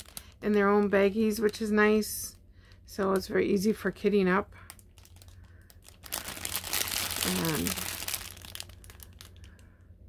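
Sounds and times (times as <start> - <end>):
plastic bags crinkling: 0.0 - 1.8, 4.6 - 9.8.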